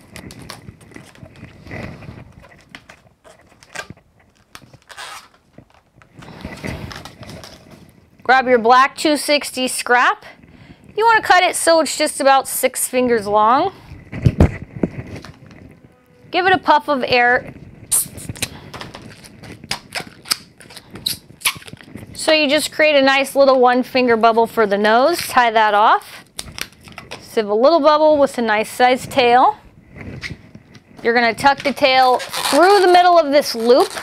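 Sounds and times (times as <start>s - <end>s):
latex balloons rubbing: 0.0s - 8.1s, 13.1s - 22.6s, 29.9s - 34.0s
puff of air from balloon pump: 17.9s - 18.7s.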